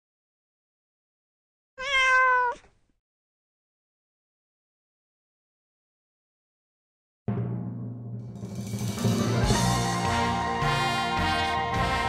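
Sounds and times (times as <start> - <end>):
cat meow: 1.8 - 2.7.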